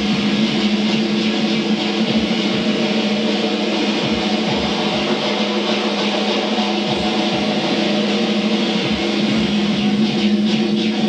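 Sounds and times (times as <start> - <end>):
keyboard and synthesizer chords: 0.0 - 11.0
low drone: 0.0 - 11.0.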